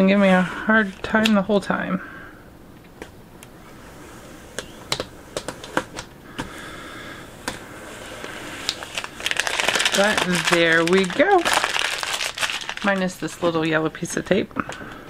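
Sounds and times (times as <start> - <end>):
fingernails tapping plastic: 4.5 - 6.6
plastic film crinkling: 7.4 - 14.2.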